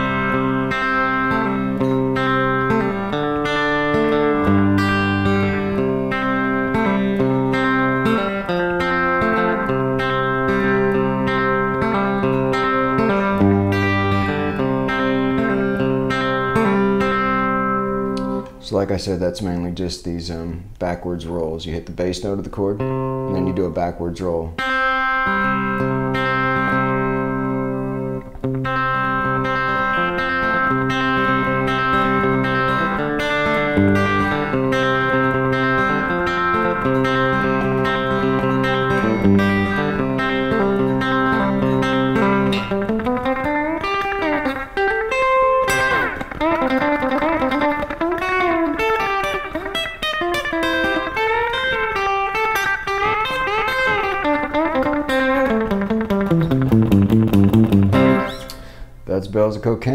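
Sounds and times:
electric guitar with slapback delay: 0.0 - 19.2, 22.7 - 59.0.

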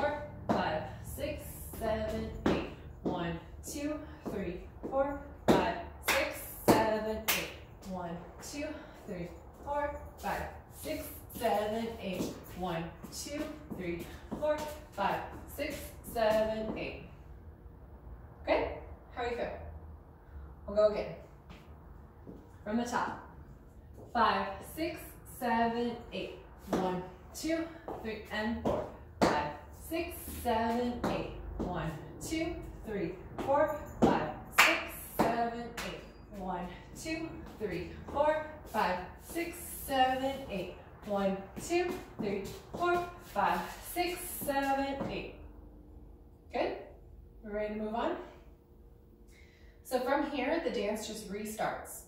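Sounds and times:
woman counting: 0.0 - 17.2, 18.4 - 19.7, 20.6 - 21.3, 22.6 - 23.4, 24.0 - 45.5, 46.4 - 48.4, 49.9 - 52.0.

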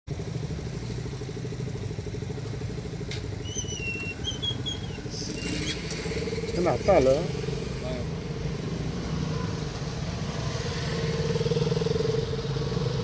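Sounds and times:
vehicle engine idling: 0.1 - 8.8.

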